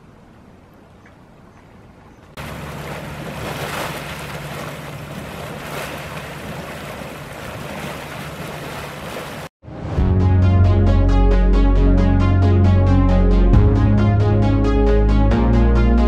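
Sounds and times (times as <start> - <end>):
water boiling and gushing: 2.4 - 9.5.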